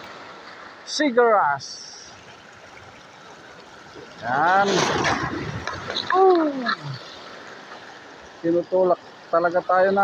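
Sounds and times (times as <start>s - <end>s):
small sea waves washing in: 1.6s - 9.3s.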